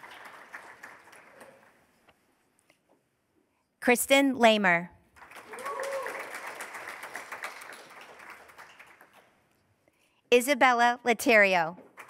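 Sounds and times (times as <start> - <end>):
audience clapping: 0.0 - 1.9, 5.1 - 9.5, 11.8 - 12.0.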